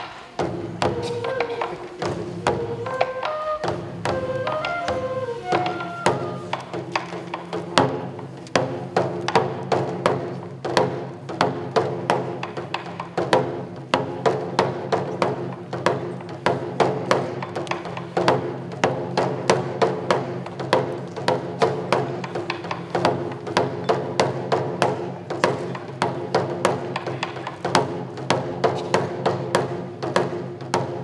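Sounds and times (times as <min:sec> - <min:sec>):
taiko drums: 0:00.0 - 0:31.0.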